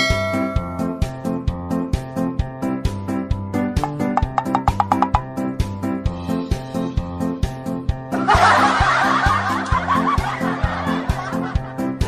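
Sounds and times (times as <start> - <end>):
background music with steady beat: 0.0 - 12.0
loud laughter: 8.1 - 12.0.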